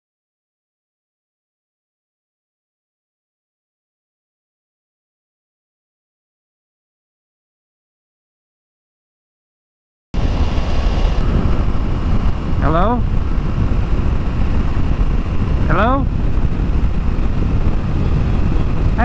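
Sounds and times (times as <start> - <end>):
motorcycle engine and wind rumble: 10.2 - 19.0.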